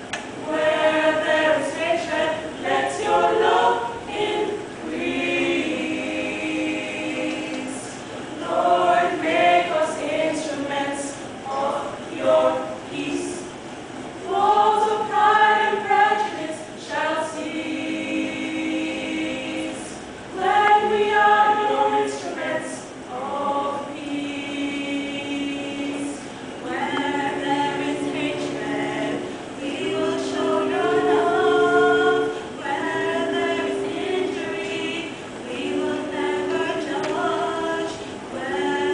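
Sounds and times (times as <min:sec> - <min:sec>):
choir of young women singing: 0:00.0 - 0:38.9.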